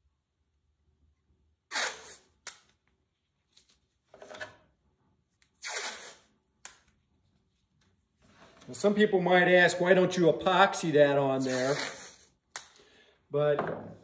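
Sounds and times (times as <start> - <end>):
tape ripping off roll: 5.6 - 6.2.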